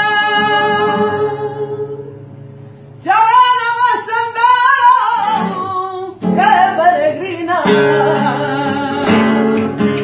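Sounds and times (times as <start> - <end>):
woman singing: 0.0 - 2.2, 3.0 - 10.0
acoustic guitar strumming: 0.0 - 10.0.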